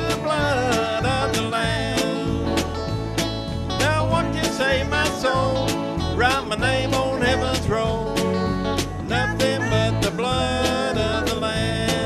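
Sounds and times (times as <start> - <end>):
man singing: 0.0 - 2.7, 3.7 - 12.0
drum kit beat: 0.0 - 12.0
electric bass: 0.0 - 12.0
guitar: 0.0 - 12.0.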